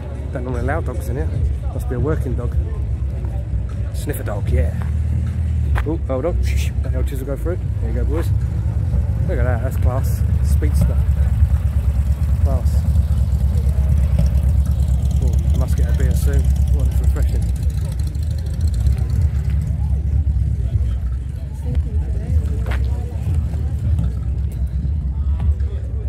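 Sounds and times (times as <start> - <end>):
car engine rumbling: 0.0 - 26.0
people chattering: 0.0 - 26.0.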